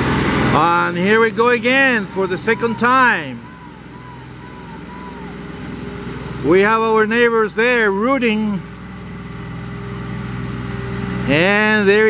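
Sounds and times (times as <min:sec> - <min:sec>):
tractor engine working hard: 0:00.0 - 0:12.0.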